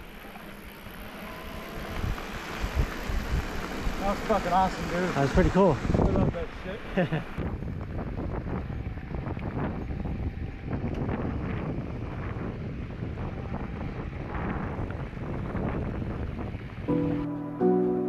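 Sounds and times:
wind buffeting microphone: 0.0s - 17.3s.

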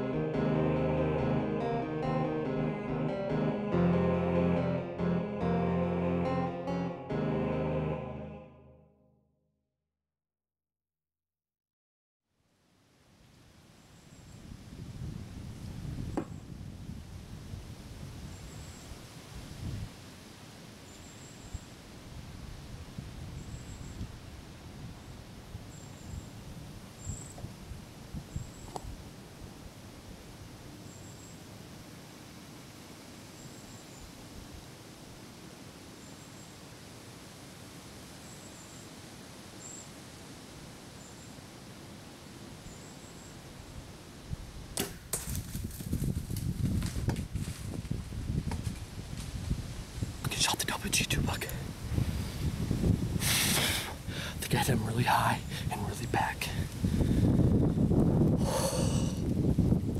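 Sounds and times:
wind through trees: 12.4s - 59.9s
bow shot crack: 44.7s - 45.5s
animal running through dry leaves: 45.1s - 49.9s.

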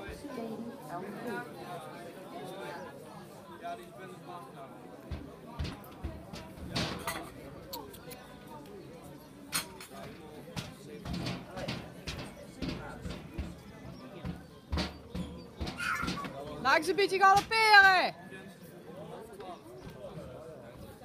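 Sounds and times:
people talking: 0.0s - 21.0s
sharp knocks and clicks: 5.1s - 7.9s, 9.5s - 16.4s.

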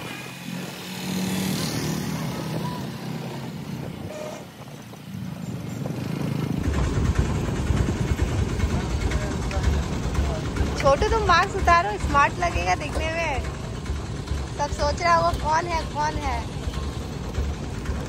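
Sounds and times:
auto-rickshaw engine running: 0.0s - 18.0s
road noise: 0.0s - 18.0s
rough low rumble: 5.8s - 18.0s.

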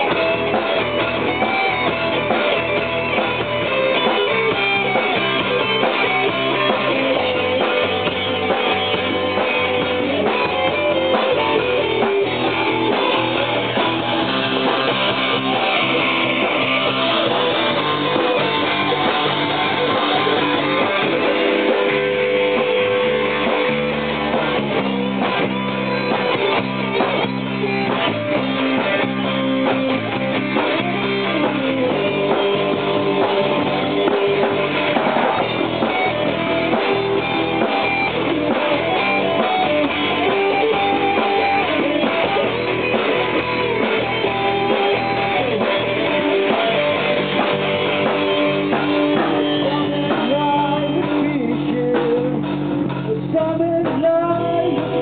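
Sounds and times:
electric guitar playing: 0.0s - 55.0s.

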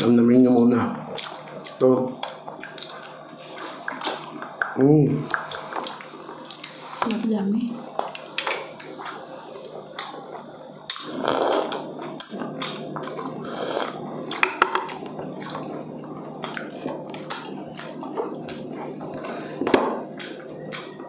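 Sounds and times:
chewing and mouth noises: 0.5s - 21.0s.

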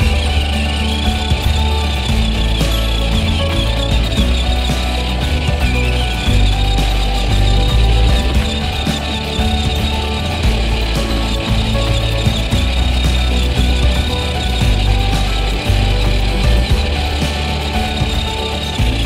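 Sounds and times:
background music with bass line: 0.0s - 19.0s.

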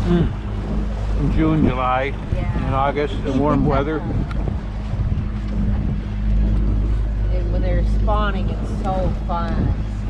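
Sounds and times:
boat motor humming: 0.0s - 10.0s
wind rumbling on microphone: 0.0s - 10.0s.

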